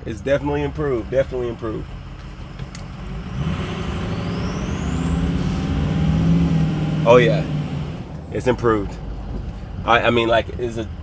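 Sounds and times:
diesel truck engine accelerating: 0.0s - 11.0s
turbocharger whistle: 3.5s - 8.2s.

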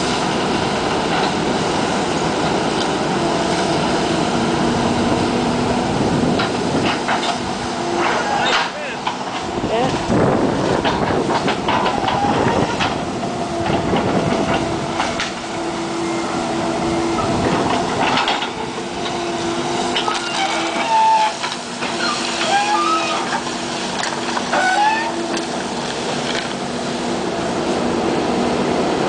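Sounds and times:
excavator engine humming: 0.0s - 29.0s
short squeals: 8.0s - 8.8s, 20.0s - 23.4s, 24.5s - 25.4s.

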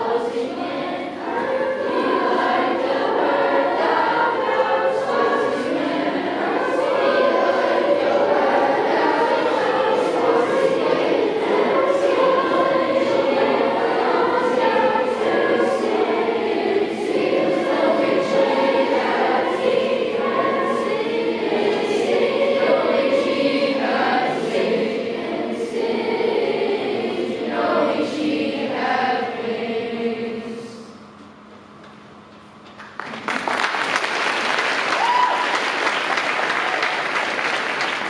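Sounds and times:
children's choir singing a cappella: 0.0s - 31.7s.

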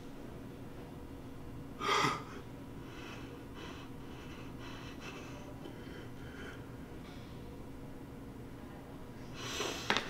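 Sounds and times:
man gasping: 1.8s - 6.7s.

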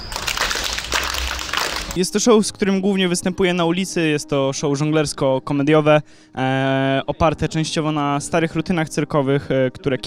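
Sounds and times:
audience clapping: 0.0s - 2.0s.

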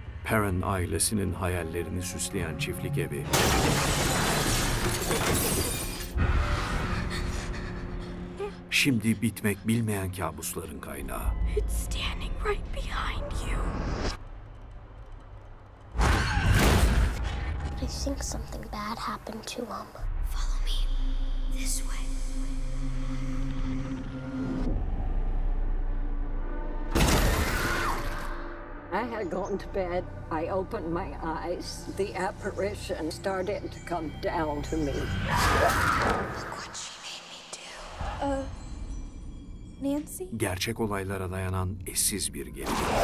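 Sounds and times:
horror film score: 0.0s - 43.0s
glass shattering: 3.3s - 6.1s.

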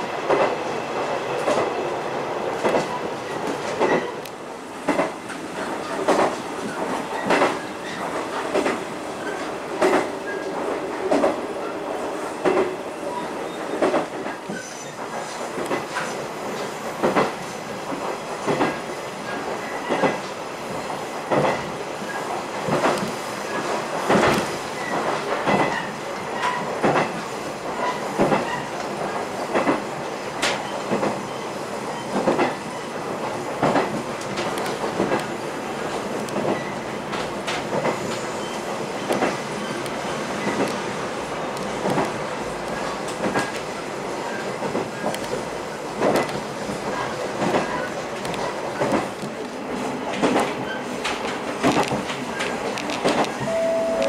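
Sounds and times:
railcar rolling rumble: 0.0s - 54.0s.

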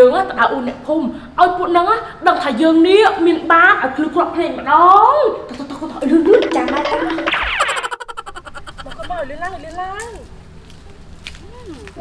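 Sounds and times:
falling electronic glide: 6.3s - 8.0s.

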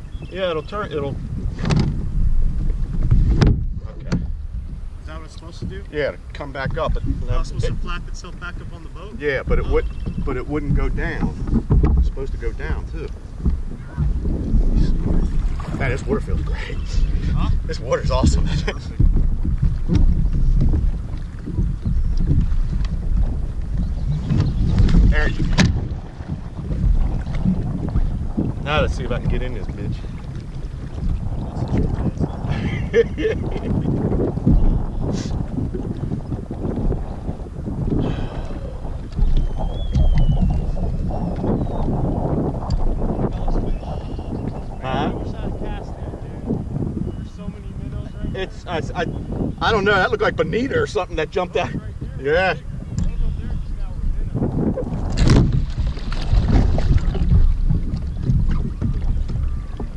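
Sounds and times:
wind buffeting microphone: 0.0s - 59.9s
man speaking: 5.1s - 11.3s, 15.7s - 19.0s, 47.3s - 52.6s.

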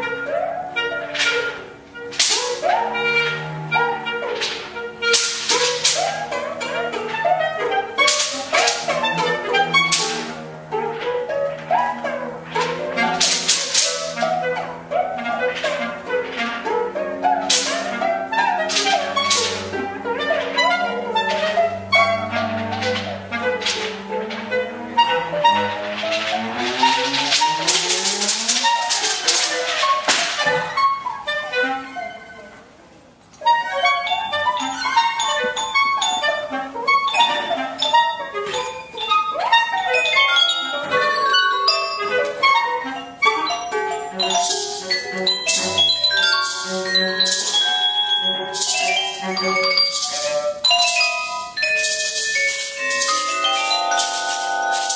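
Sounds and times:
percussion: 0.0s - 32.4s, 33.3s - 54.9s
cello: 0.0s - 54.9s
clarinet: 0.0s - 54.9s
harp: 0.0s - 54.9s.

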